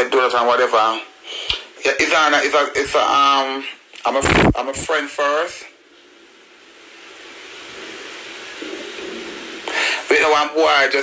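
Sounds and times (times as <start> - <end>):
faint low hum: 0.0 - 11.0
hiss-like rushing noise: 6.0 - 10.8.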